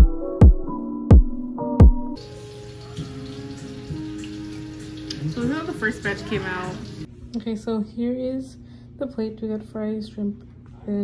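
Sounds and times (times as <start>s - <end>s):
woman's voice: 5.3s - 11.0s.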